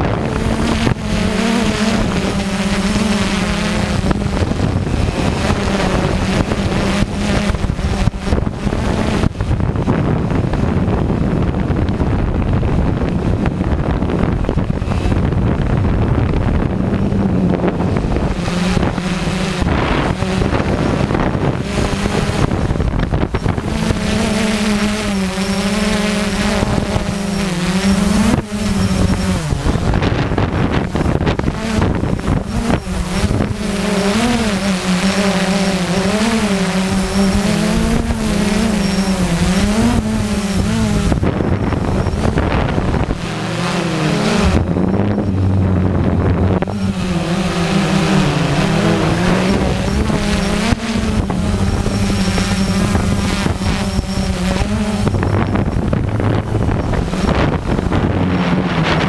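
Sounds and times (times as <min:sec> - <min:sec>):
drone motors and propellers humming: 0:00.0 - 0:59.0
wind noise: 0:00.0 - 0:59.0.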